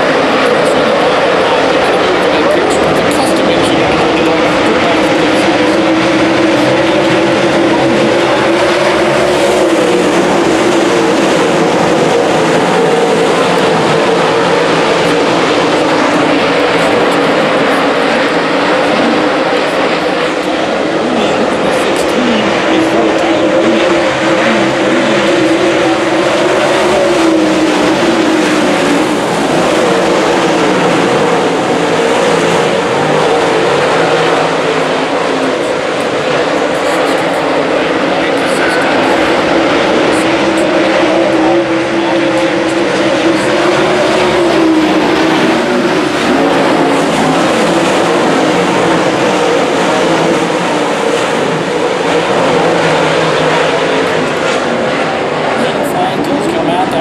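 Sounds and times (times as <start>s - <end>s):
race car engines: 0.0s - 57.0s.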